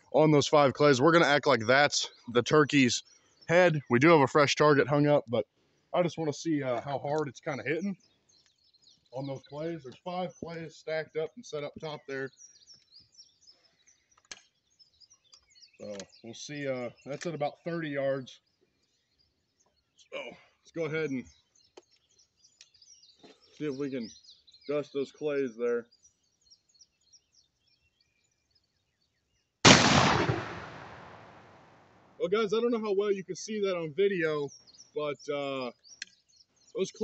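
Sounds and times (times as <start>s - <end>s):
faint bird chirps: 0.0s - 29.6s, 32.2s - 37.0s
shotgun shot: 29.7s - 31.7s.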